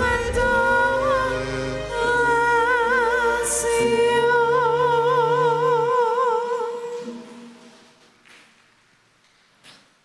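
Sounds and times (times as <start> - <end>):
hymn chord with waver: 0.0 - 7.8.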